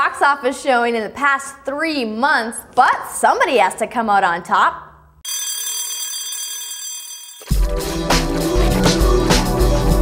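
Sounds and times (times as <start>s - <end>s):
ringing bell-like tone: 5.2s - 7.7s.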